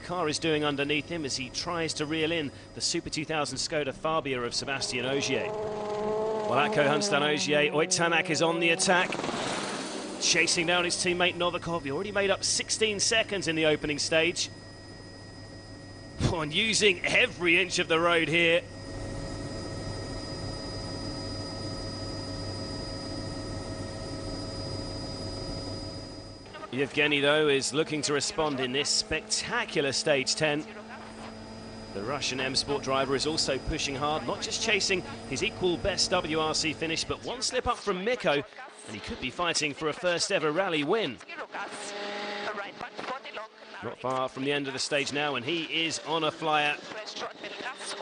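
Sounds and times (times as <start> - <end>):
helicopter rotor hum: 0.0 - 48.0
turbine whine: 0.0 - 48.0
rally car engine at speed: 4.4 - 12.3, 24.1 - 37.2, 41.5 - 43.1.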